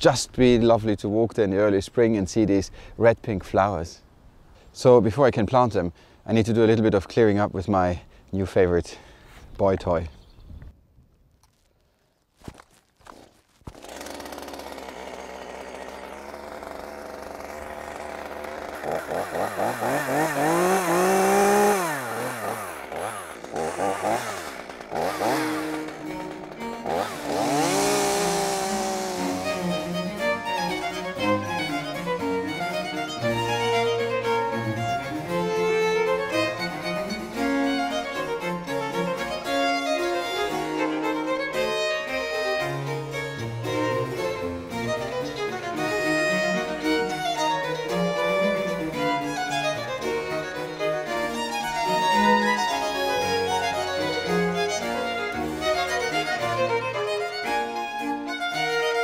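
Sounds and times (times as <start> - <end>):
chainsaw revving: 13.1 - 59.0
classical string music: 13.8 - 59.0.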